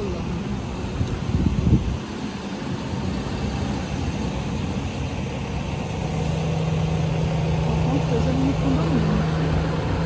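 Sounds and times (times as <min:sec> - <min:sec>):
street traffic hum: 0:00.0 - 0:10.0
vehicle engine running: 0:00.0 - 0:10.0.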